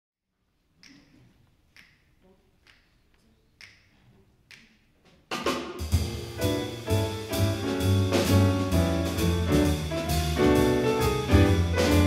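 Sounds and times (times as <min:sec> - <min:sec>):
finger snaps: 0:00.8 - 0:02.0, 0:02.6 - 0:04.8.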